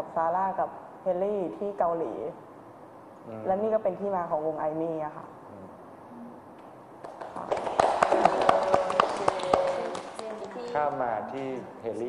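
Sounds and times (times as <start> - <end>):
small group clapping: 7.0 - 11.6.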